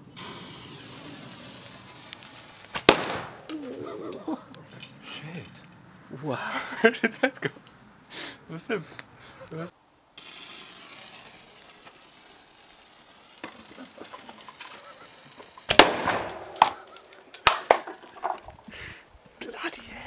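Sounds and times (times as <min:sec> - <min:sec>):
sharp crack: 0:00.0 - 0:05.7, 0:10.2 - 0:18.6
plastic bottle bursting bang: 0:02.7 - 0:03.6, 0:15.7 - 0:18.4.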